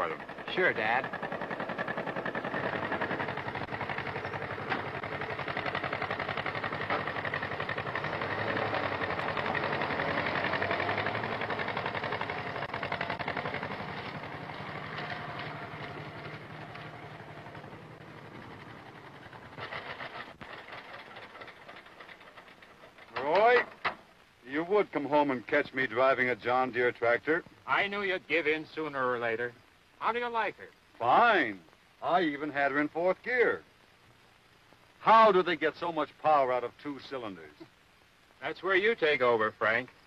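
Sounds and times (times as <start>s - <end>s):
two-cylinder tractor engine running: 0.0s - 24.0s.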